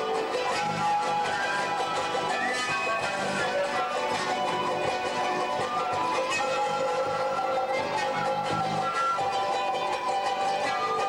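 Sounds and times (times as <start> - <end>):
charangos and guitar strumming: 0.0 - 11.0
wind instruments holding long notes: 0.0 - 11.0.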